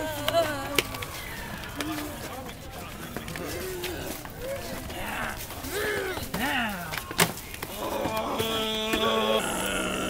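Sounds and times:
crowd voices: 0.0s - 10.0s
street noise: 0.0s - 10.0s.

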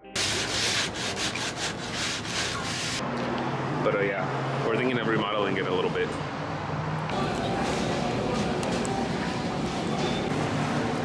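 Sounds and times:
hand sanding wooden boards: 0.2s - 3.0s.

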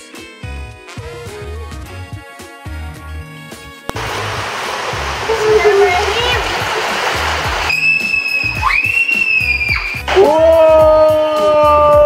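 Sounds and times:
background music with beat: 0.0s - 4.0s, 5.4s - 12.0s
rushing water: 3.9s - 10.2s
long high-pitched screams: 7.6s - 12.0s
children's short cries: 7.8s - 12.0s.

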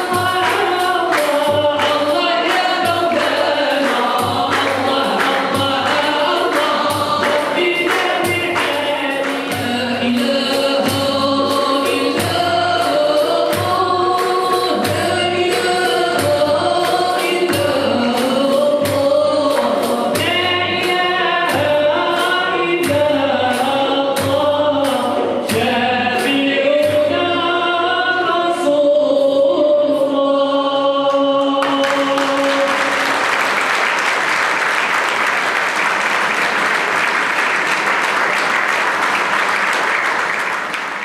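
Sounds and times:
hand drums: 0.0s - 28.6s, 31.7s - 41.0s
men singing in chorus: 0.0s - 33.2s.

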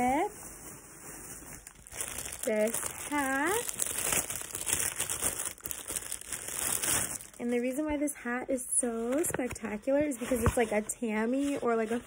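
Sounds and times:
plastic wrapping crinkling: 0.0s - 7.8s.

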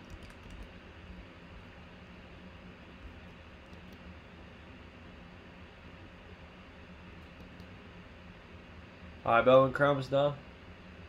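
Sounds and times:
room noise hiss and hum: 0.0s - 11.0s
faint clicks: 7.2s - 7.8s.

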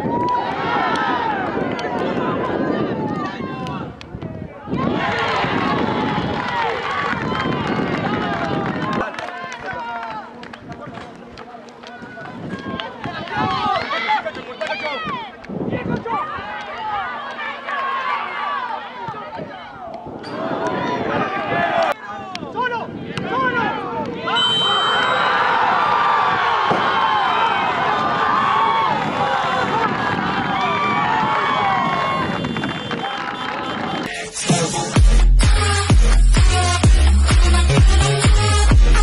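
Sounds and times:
people shouting: 16.0s - 34.3s.

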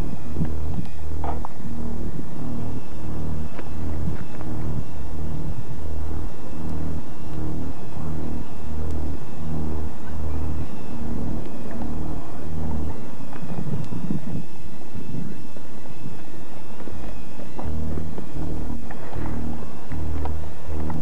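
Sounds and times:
pulsing low synth drone: 0.0s - 21.0s
rough rumbling noise: 0.0s - 21.0s.

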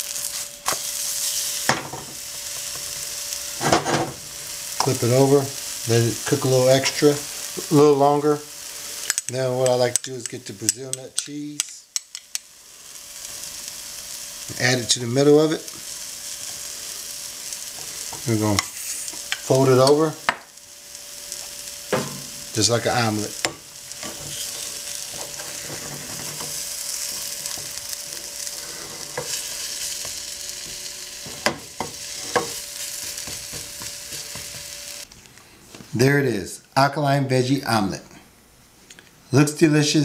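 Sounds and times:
omelet sizzling in a pan: 0.0s - 35.1s
spatula scraping a pan: 23.4s - 34.8s.

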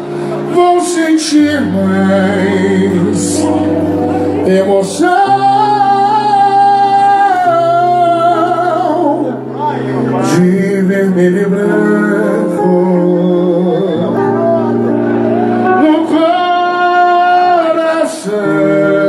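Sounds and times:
band playing sustained chords: 0.0s - 19.0s.

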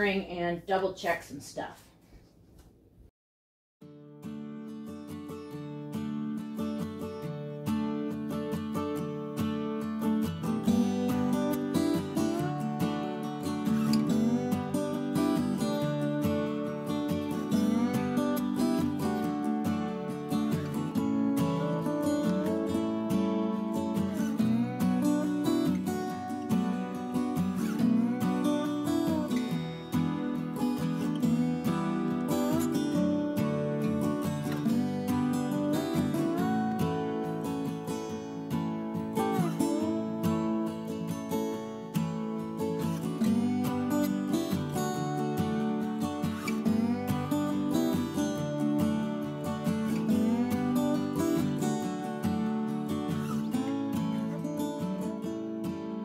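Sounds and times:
acoustic guitar music: 3.8s - 56.0s.

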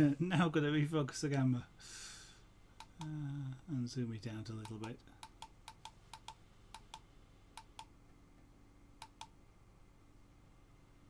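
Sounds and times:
computer mouse clicks: 2.8s - 3.1s, 4.6s - 7.9s, 9.0s - 9.4s.

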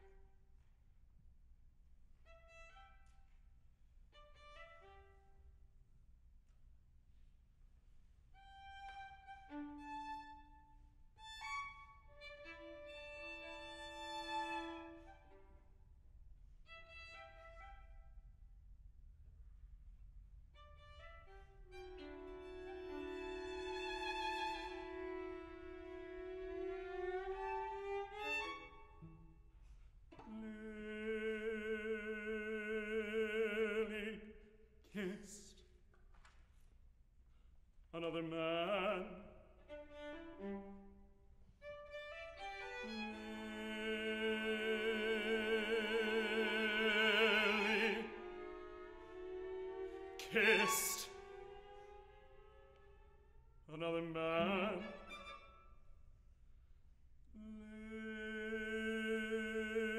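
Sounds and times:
violins playing softly: 8.3s - 15.8s, 20.6s - 34.1s, 38.0s - 56.0s.

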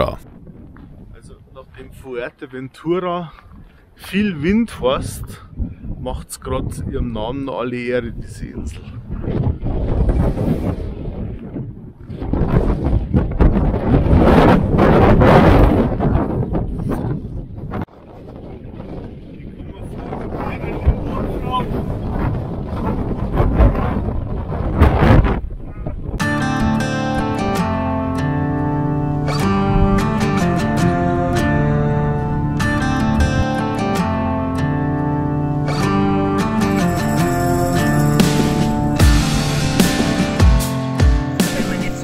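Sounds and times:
wind buffeting microphone: 0.0s - 26.5s, 27.3s - 40.4s
acoustic guitar music: 26.2s - 42.0s.

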